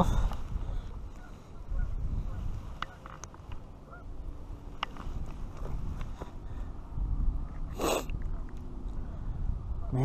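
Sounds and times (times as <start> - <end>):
wind rumbling on microphone: 0.0 - 10.0
clicks and rustles of handling: 2.8 - 3.7.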